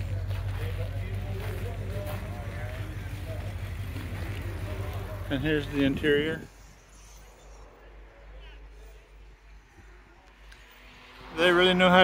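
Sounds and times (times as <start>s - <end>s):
faint distant voices talking: 0.0s - 11.2s
low hum: 0.0s - 12.0s.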